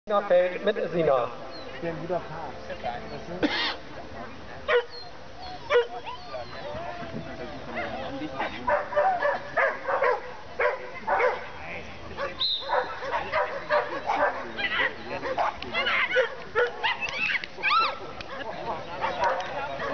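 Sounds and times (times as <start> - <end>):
people's voices: 0.1 - 19.9
dog barking excitedly: 8.7 - 11.5, 12.2 - 17.4.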